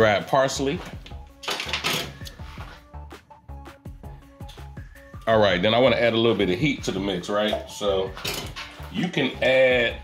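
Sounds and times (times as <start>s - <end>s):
background music with plucked notes: 0.0s - 10.0s.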